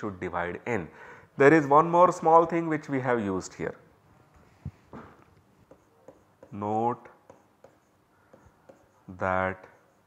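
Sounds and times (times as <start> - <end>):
stylus scratching on pen tablet: 5.6 - 10.0.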